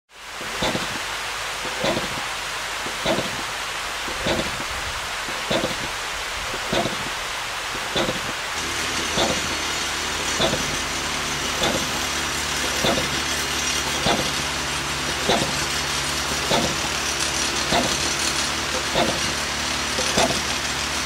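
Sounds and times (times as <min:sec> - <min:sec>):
waterfall rushing over rocks: 0:00.2 - 0:21.0.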